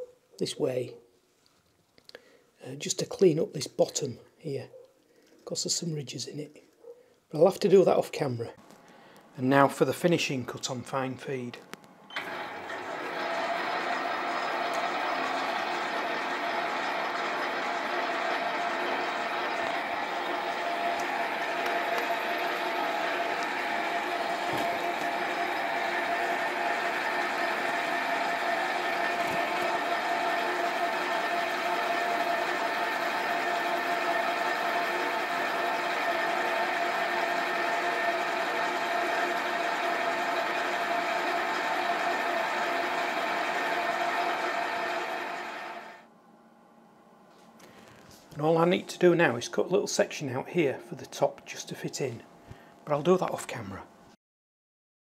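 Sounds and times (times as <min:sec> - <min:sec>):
metal lathe cutting: 0:12.1 - 0:46.0
lathe drive whine: 0:12.1 - 0:46.1.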